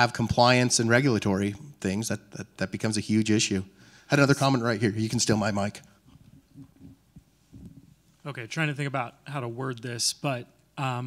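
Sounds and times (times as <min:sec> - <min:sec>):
microphone handling noise: 0:06.1 - 0:08.0.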